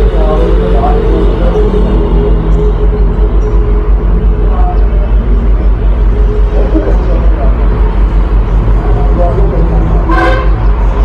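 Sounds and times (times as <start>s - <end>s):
loud low rumble: 0.0s - 11.0s
vehicle horn toot: 10.1s - 10.6s.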